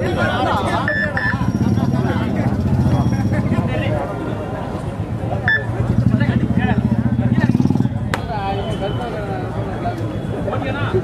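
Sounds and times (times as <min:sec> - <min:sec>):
crowd voices: 0:00.0 - 0:11.0
short high beeps: 0:00.8 - 0:01.6, 0:05.5 - 0:05.8.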